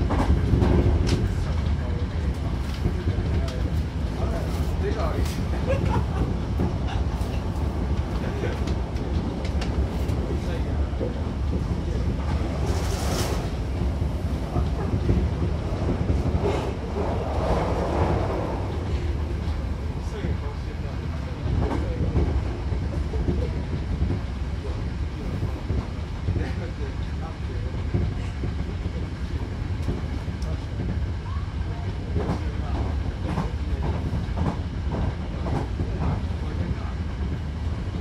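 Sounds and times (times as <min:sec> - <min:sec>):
train rumbling inside carriage: 0:00.0 - 0:38.0.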